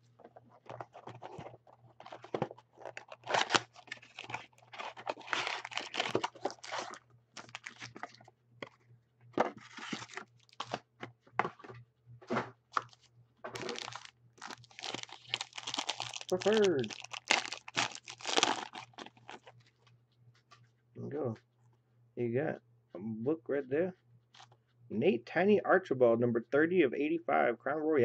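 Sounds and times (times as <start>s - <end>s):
cardboard and wrapper tearing: 0.7s - 8.2s, 9.6s - 10.8s, 13.6s - 19.5s.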